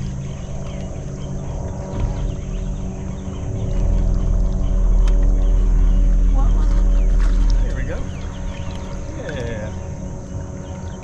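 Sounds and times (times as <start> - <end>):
electric trolling motor humming: 0.0 - 11.0
low rumble: 0.0 - 11.0.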